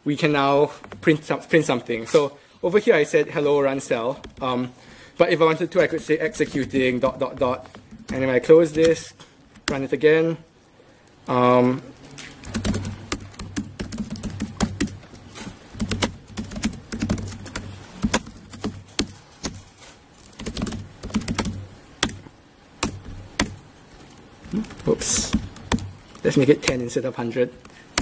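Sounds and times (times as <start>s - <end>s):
laptop keyboard typing: 4.0s - 4.6s, 5.5s - 10.0s, 11.0s - 28.0s.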